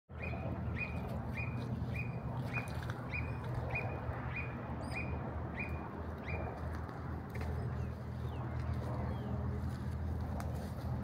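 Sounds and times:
low steady rumble: 0.1s - 11.0s.

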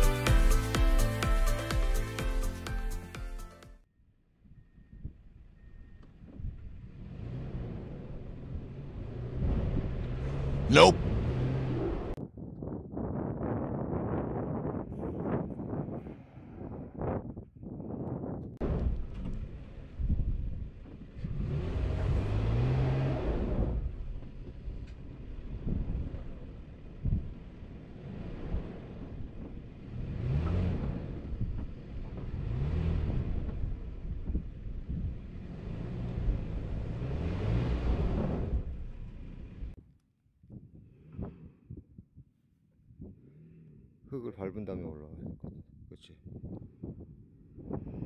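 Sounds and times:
suv engine revving: 6.7s - 12.2s, 18.6s - 39.8s.

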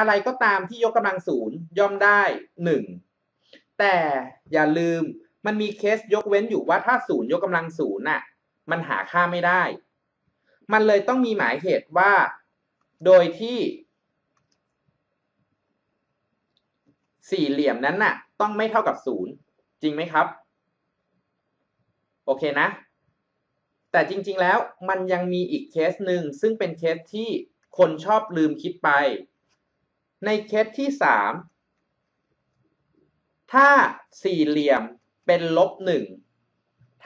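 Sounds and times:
man speaking: 0.0s - 3.1s, 3.8s - 9.9s, 10.7s - 13.9s, 17.2s - 20.5s, 22.3s - 22.9s, 24.0s - 29.3s, 30.2s - 31.5s, 33.5s - 36.3s
faint soft clicks: 12.7s - 13.0s, 14.3s - 15.6s, 16.4s - 17.2s, 29.4s - 29.8s.

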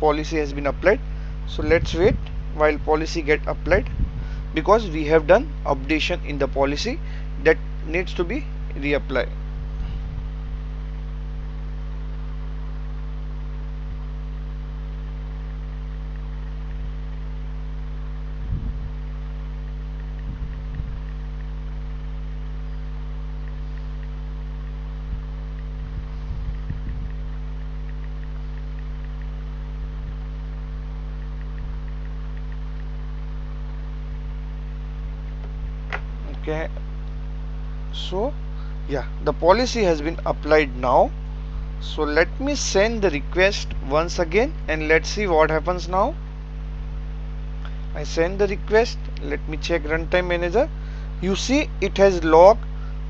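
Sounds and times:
electrical mains hum: 0.0s - 53.0s.

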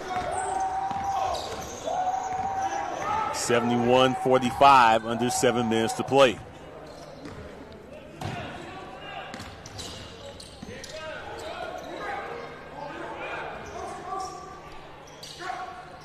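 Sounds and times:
players calling out: 0.2s - 6.6s.

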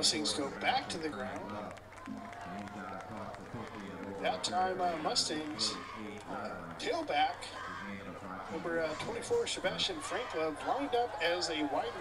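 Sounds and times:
indistinct voices talking: 0.0s - 12.0s
stadium noise: 0.0s - 12.0s.

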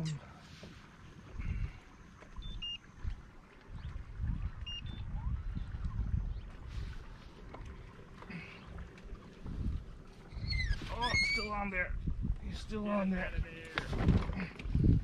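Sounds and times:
wind buffeting microphone: 1.3s - 1.8s, 2.4s - 8.1s, 8.7s - 15.0s.

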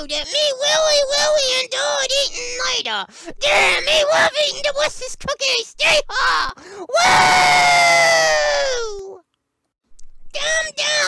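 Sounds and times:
cartoon voice yelling: 0.1s - 9.2s, 10.4s - 11.0s.

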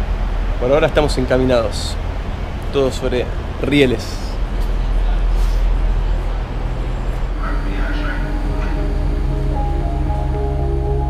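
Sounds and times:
steady low rumble: 0.0s - 11.0s
calm ambient music: 6.6s - 11.0s.

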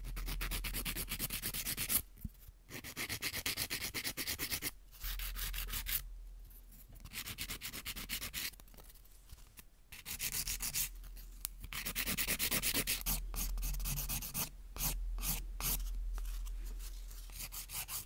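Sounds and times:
nail file rubbing: 10.0s - 10.9s, 11.6s - 16.5s, 17.2s - 18.0s.

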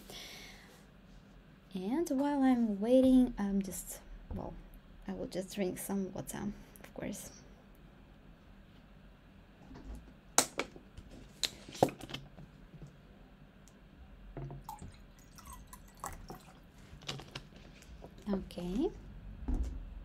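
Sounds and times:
person drinking water: 14.6s - 16.7s.

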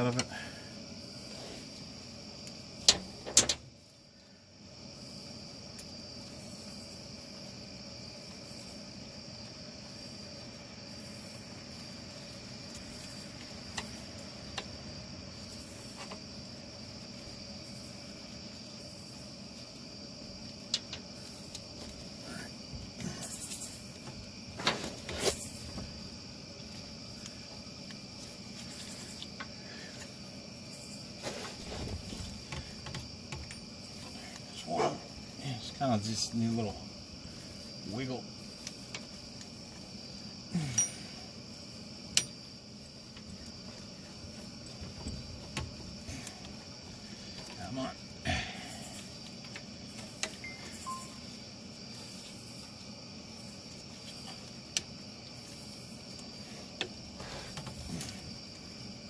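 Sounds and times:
metallic clinks of hand tools: 40.6s - 41.2s
high-pitched whine: 50.4s - 51.4s.

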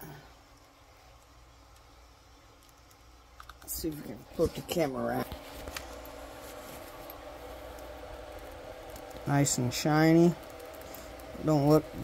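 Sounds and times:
faint hiss: 0.0s - 12.0s
low background hum: 0.0s - 12.0s.

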